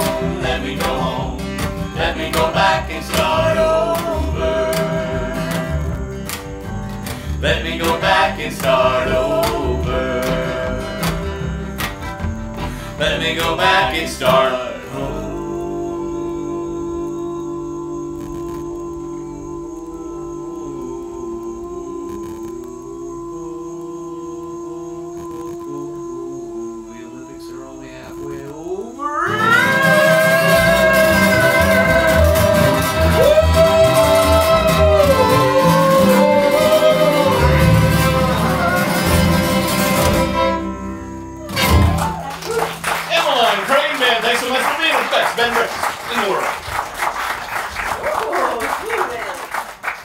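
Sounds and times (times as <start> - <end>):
people singing: 0.0 - 6.5, 7.1 - 46.6
upright bass: 0.0 - 16.7, 29.5 - 45.5
acoustic guitar: 0.0 - 23.4, 25.0 - 50.0
audience clapping: 41.7 - 50.0.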